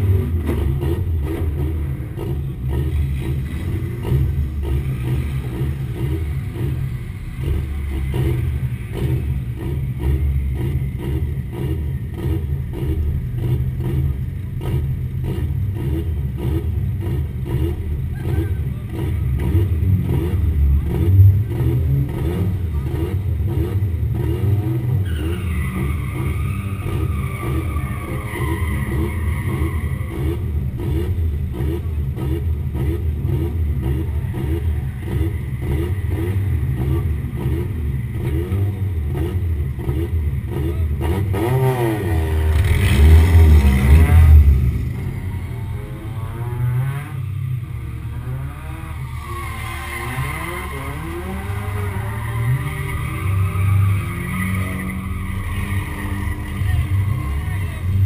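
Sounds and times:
car engine idling: 0.0s - 24.3s, 42.4s - 58.0s.

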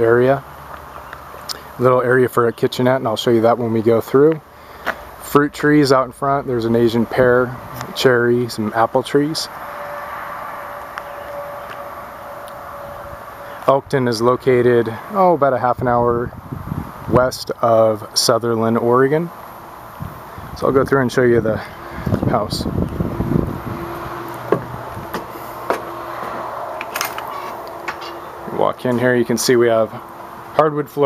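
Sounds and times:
steady low hum: 3.4s - 31.0s.

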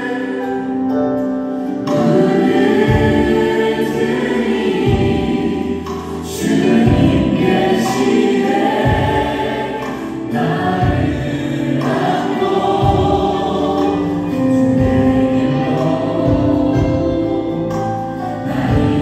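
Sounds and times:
choir of voices singing: 0.0s - 19.0s
keyboard and guitar: 0.0s - 19.0s.

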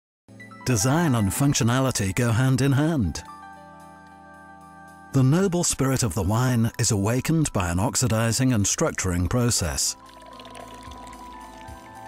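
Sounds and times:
soft background music: 0.3s - 12.0s.

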